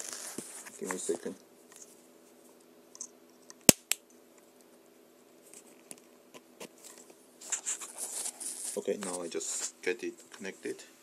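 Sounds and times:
faint steady hum: 0.0 - 11.0
wires rustling: 5.4 - 10.7.

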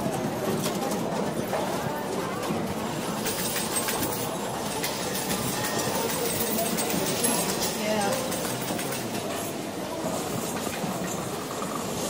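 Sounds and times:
murmur of many voices: 0.0 - 12.0
small clicks and clatter: 2.4 - 9.5.

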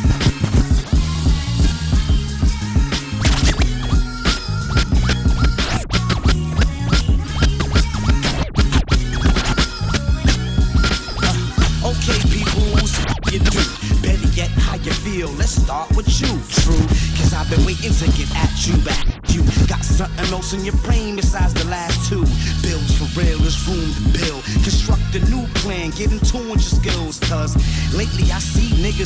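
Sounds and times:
rapping over a beat: 0.0 - 29.0.

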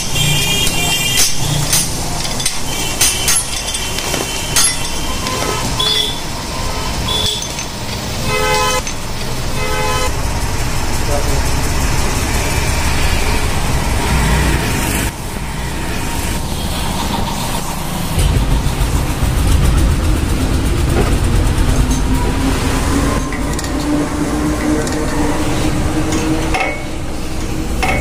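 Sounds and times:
vehicle horn beeps: 0.0 - 1.6, 4.2 - 7.6, 8.2 - 8.9, 9.6 - 10.1
traffic noise: 0.0 - 28.0
workshop noise: 0.0 - 28.0
heavy low rumble: 9.0 - 27.8.

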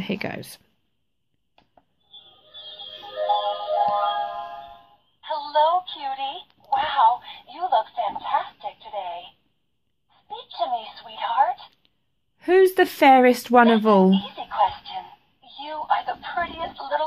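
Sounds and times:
recorded voice through small speaker: 5.2 - 9.5, 10.1 - 11.8, 12.4 - 17.0.

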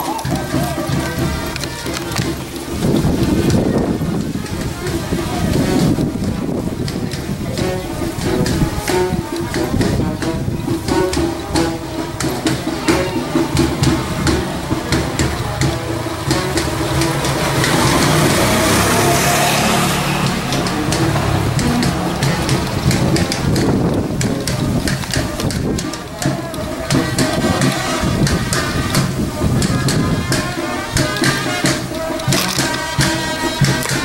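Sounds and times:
crowd voices: 0.0 - 34.0
motorcycle engine: 13.7 - 25.4.

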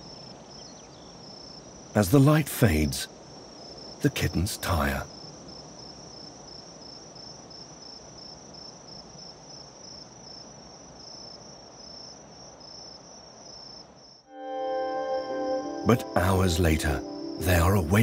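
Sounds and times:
crickets chirping: 0.0 - 18.0
faint outdoor background noise: 0.0 - 18.0
music with sustained notes: 14.3 - 18.0.

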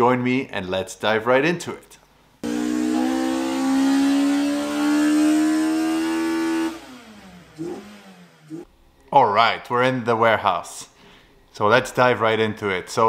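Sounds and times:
car engine revving high: 2.4 - 8.7.

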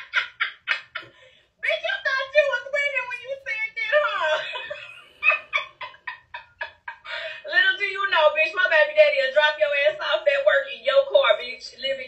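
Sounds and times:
person cackling: 0.0 - 1.2.

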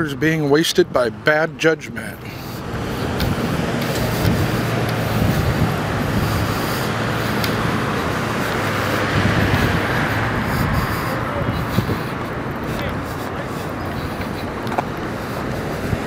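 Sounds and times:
road traffic: 0.0 - 16.0.

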